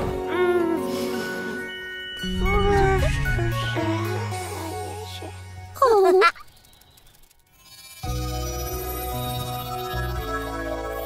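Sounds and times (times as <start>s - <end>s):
background music: 0.0s - 6.3s, 8.1s - 11.0s.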